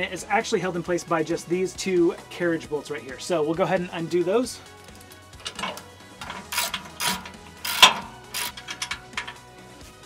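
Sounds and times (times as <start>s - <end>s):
ratchet wrench clicking: 5.4s - 9.4s.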